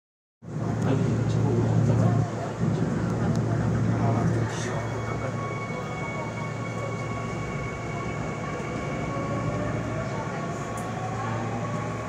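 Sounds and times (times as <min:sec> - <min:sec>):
subway train running hum: 0:00.4 - 0:12.0.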